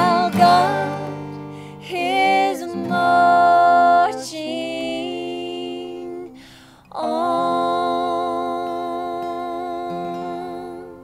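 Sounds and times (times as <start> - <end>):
acoustic guitars: 0.0 - 11.0
person singing a long note: 1.9 - 11.0.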